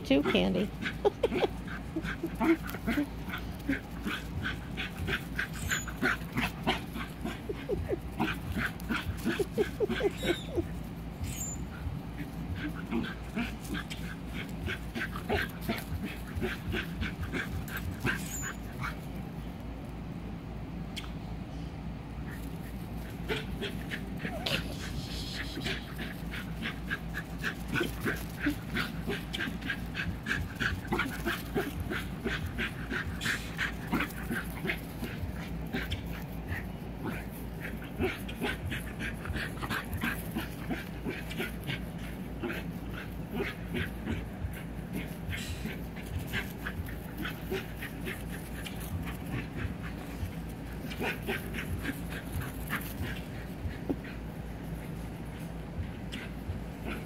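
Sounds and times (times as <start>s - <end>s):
dogs yipping: 0.1s - 19.2s, 22.2s - 57.0s.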